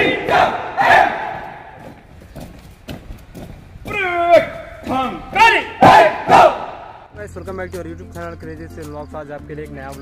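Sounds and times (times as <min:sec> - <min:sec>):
people shouting drill calls: 0:00.0 - 0:01.5, 0:03.9 - 0:07.0.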